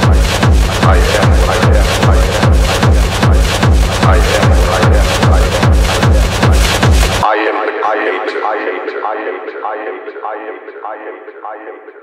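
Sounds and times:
looped spoken vocal sample: 0.0s - 12.0s.

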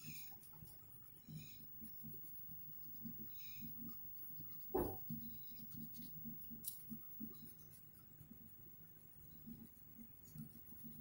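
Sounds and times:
crayon rubbing on paper: 0.0s - 11.0s.

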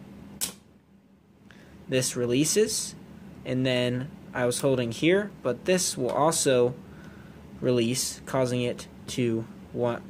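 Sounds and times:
sharp plastic click: 0.4s - 0.6s.

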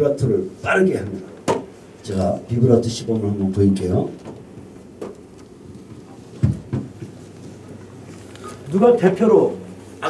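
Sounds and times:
microphone handling thumps: 5.8s - 7.6s.

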